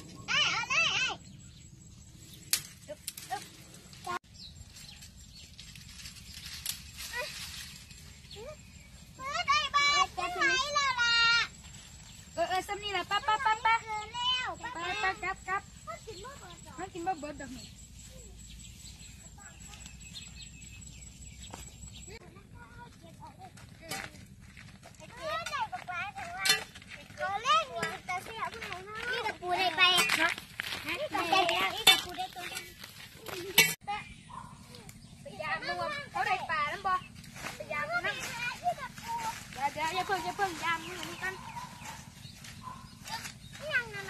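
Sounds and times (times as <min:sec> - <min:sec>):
children chattering outdoors: 0:00.0 - 0:01.9, 0:07.0 - 0:44.0.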